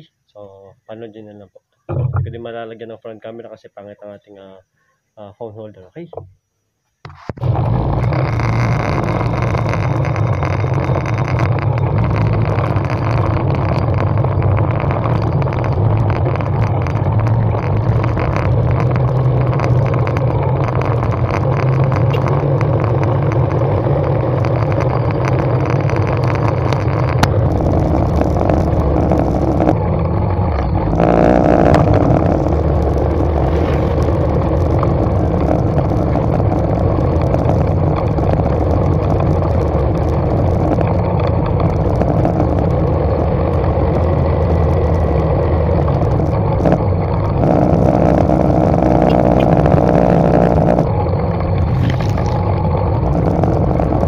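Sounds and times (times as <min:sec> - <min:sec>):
small motorcycle engine running: 0:07.4 - 0:54.0.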